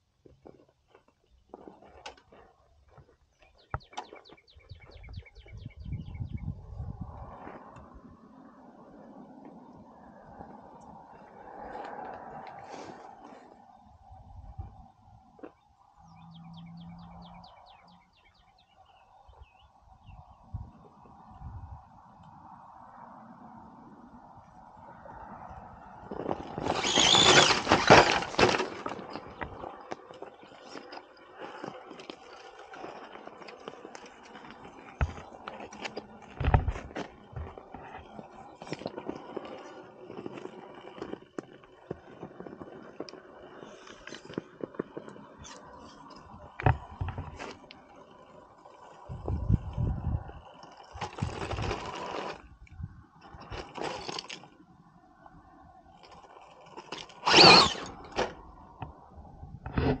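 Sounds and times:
faint drivetrain whine: 0.0 - 60.0
tyres scraping and crunching on stone: 0.1 - 4.5, 26.0 - 54.7, 55.9 - 59.0
rushes of noise: 6.4 - 15.0.

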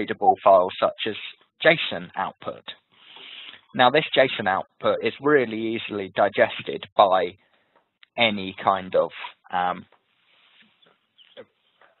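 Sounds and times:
faint breath and mouth noises: 2.8 - 3.8, 9.2 - 12.0.

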